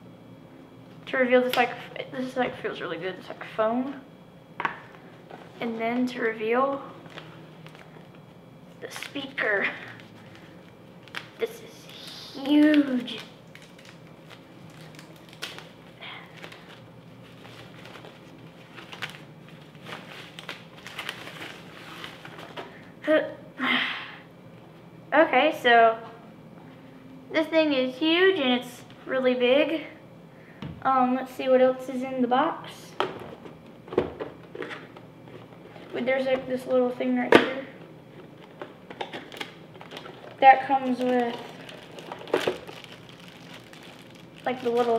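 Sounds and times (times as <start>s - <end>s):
foam wrapping crinkling: 7.0s - 8.2s, 8.8s - 22.6s, 38.2s - 44.9s
hands rummaging in cardboard box: 39.3s - 44.9s.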